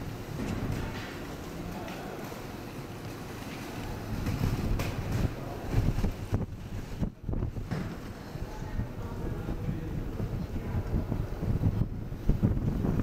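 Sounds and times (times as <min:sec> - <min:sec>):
wind buffeting microphone: 0:03.7 - 0:13.0.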